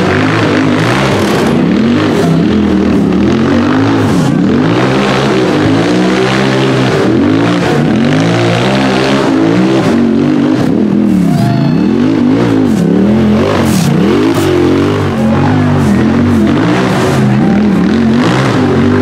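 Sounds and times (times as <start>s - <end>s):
buggy engine revving hard: 0.0s - 19.0s.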